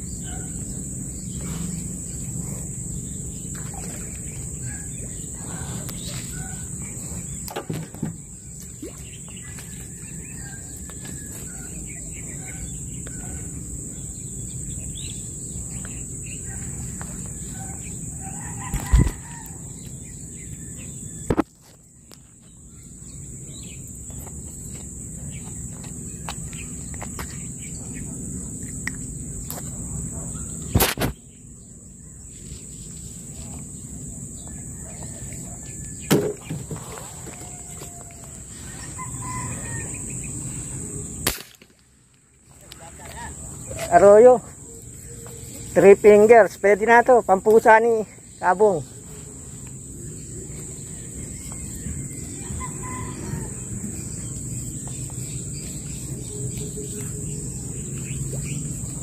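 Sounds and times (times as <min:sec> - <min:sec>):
insect drone: 0:00.0 - 0:59.0.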